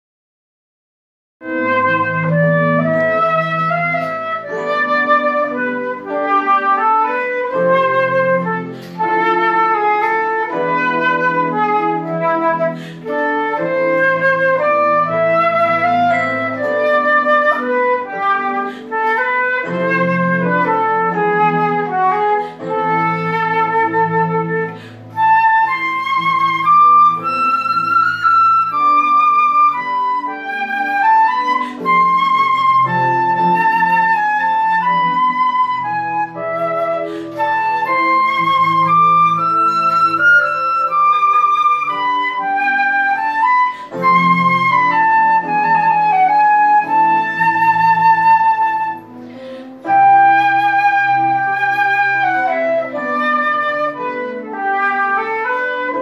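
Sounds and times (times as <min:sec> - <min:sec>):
flute melody: 0:01.4 - 0:56.0
keyboard chords: 0:01.4 - 0:56.0.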